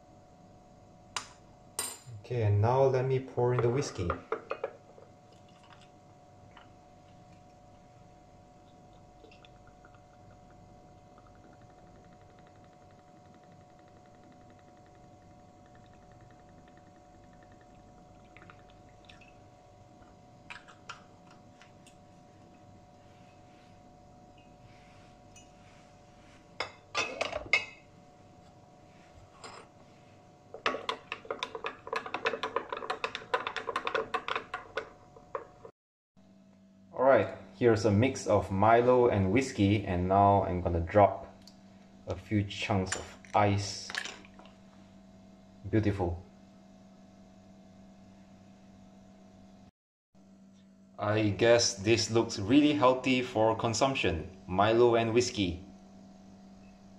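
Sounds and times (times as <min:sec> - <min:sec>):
faint steady hum: 0:00.0 - 0:56.9
liquid poured into glass: 0:05.2 - 0:06.0, 0:08.7 - 0:11.7.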